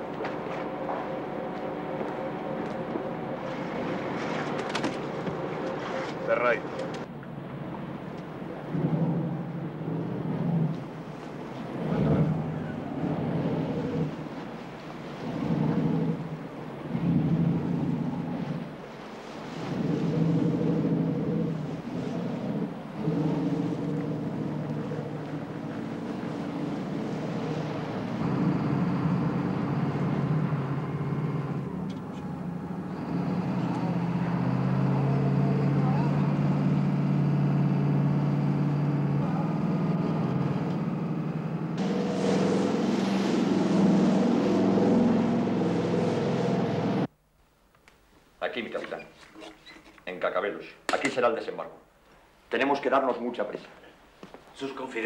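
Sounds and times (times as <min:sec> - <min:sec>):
boat engine droning: 0:00.0 - 0:47.1
rush of water from wake: 0:00.0 - 0:47.1.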